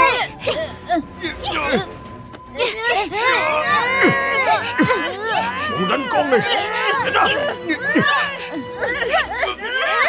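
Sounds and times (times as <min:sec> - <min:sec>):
voices crying and wailing: 0:00.0 - 0:10.0.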